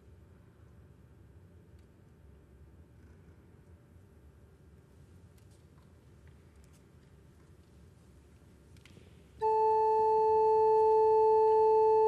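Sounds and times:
pipe organ note: 9.4 - 12.0.

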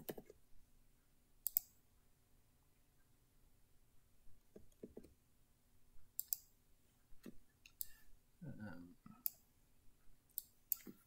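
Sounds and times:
computer mouse clicks: 1.4 - 1.8, 6.2 - 6.5, 7.6 - 8.0, 10.3 - 11.0
murmured voice: 8.4 - 9.2.

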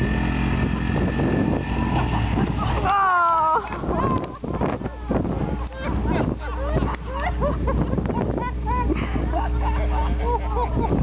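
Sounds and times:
atv engine running under load: 0.0 - 6.1.

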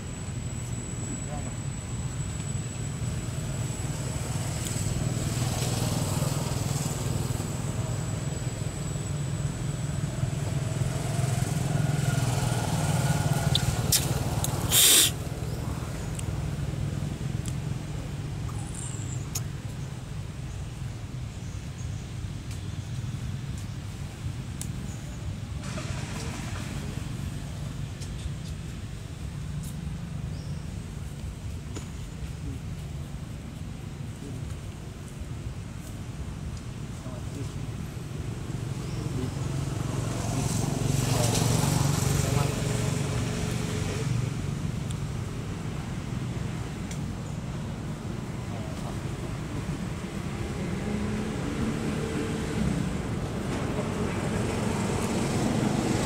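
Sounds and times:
distant voices: 0.0 - 20.8
loud burst of noise: 14.6 - 15.2.

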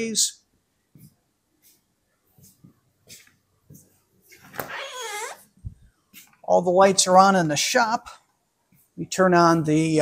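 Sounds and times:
door creaking squeal: 4.6 - 5.5.

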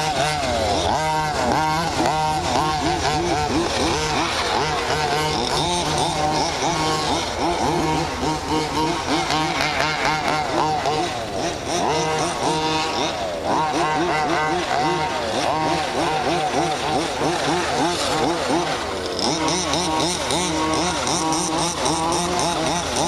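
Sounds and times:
model car engines revving: 0.0 - 23.0.

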